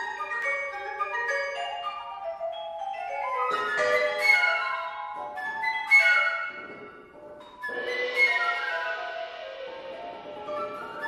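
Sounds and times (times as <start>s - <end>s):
mallet percussion notes ringing: 0.0s - 11.0s.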